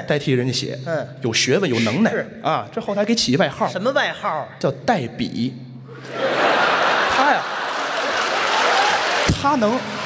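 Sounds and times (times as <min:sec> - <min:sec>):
audience laughing: 0:05.9 - 0:09.3
audience applauding: 0:06.4 - 0:10.0.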